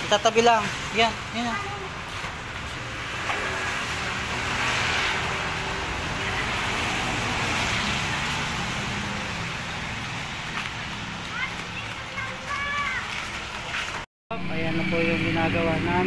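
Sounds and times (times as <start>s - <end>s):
motor vehicle passing by: 0.0s - 16.0s.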